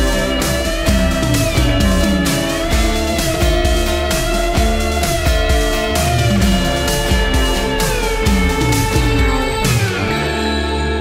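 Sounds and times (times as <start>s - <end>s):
rock music from cassette: 0.0s - 11.0s.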